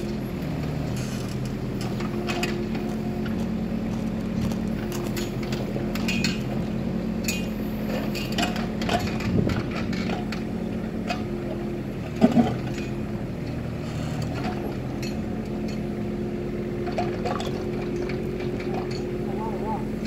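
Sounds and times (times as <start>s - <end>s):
excavator diesel engine running: 0.0s - 20.0s.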